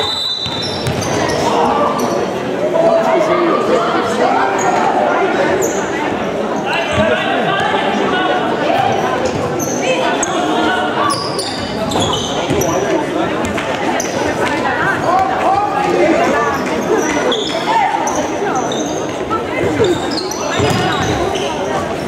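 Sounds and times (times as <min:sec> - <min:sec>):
shoes squeaking: 0:11.0 - 0:12.9, 0:16.6 - 0:21.9.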